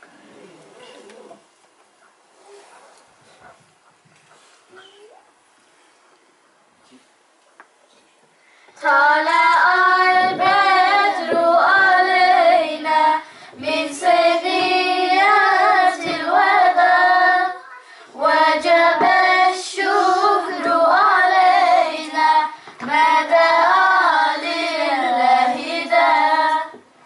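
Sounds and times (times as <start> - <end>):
girls singing unaccompanied: 8.8 - 27.0.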